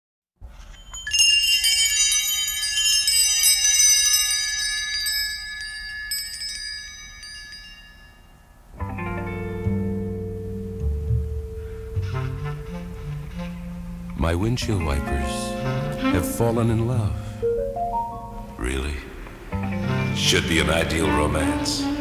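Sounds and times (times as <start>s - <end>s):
high metallic chimes tinkling: 0.4s - 8.9s
lower-pitched instrumental music: 8.7s - 22.0s.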